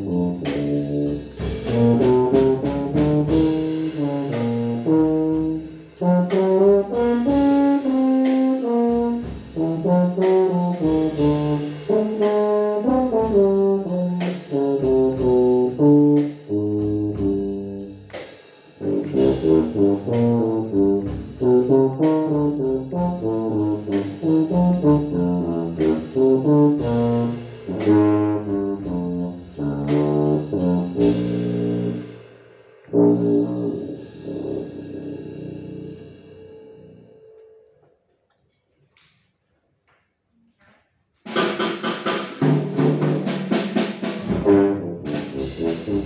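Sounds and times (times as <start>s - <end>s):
tuba playing jazz melody: 0.0s - 32.2s, 32.8s - 37.7s, 42.3s - 46.0s
drum kit: 0.0s - 37.4s, 41.2s - 46.0s.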